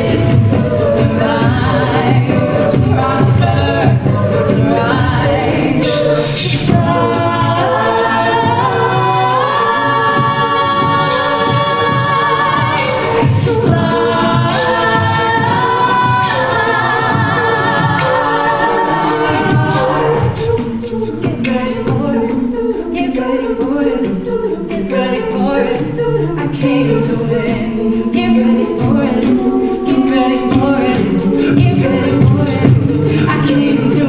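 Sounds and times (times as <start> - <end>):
a cappella group singing: 0.0 - 34.0
vocal percussion beat: 0.0 - 34.0.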